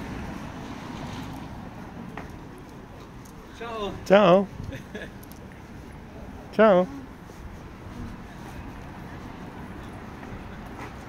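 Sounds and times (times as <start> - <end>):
low street rumble: 0.0 - 11.0.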